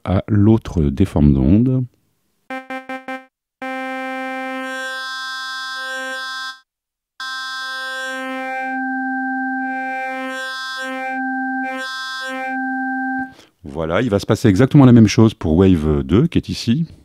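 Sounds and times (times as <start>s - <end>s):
synthesizer note with sweeping timbre: 2.5s - 5.2s, 7.2s - 13.3s.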